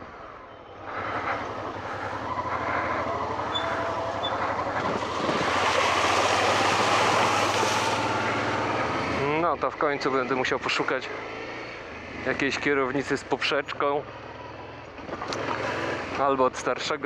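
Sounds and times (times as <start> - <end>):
tyres on dirt track: 0.0 - 17.0
motorcycle engine running: 0.8 - 9.4, 14.0 - 16.1
motorcycle riding through puddle: 2.0 - 8.8
wind noise: 3.5 - 8.3.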